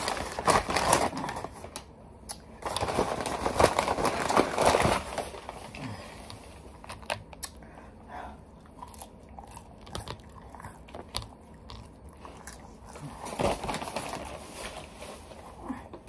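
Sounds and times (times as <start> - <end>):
person chewing crunchy food: 5.8 - 13.8.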